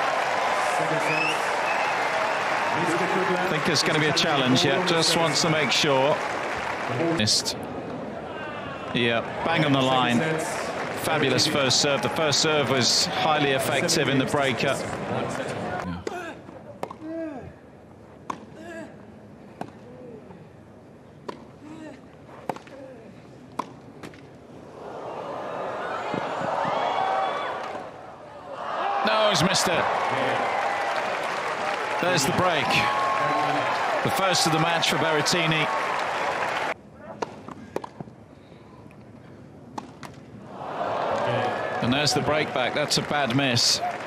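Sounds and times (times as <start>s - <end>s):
crowd noise: 0.0s - 16.8s, 24.5s - 37.6s, 40.3s - 44.0s
tennis ball strikes and bounces: 23.6s - 24.2s.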